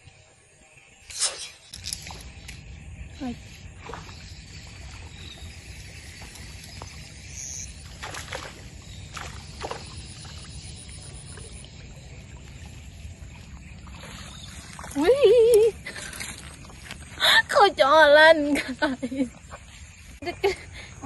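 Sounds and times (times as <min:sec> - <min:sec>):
brief swishes: 0:01.1 - 0:01.8
steady low rumble: 0:02.0 - 0:09.2.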